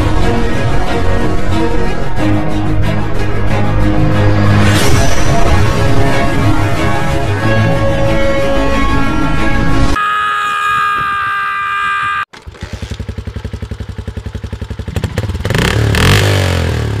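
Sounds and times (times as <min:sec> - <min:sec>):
background music: 0:00.0 - 0:10.0
motorcycle engine idling and revving: 0:12.3 - 0:17.0.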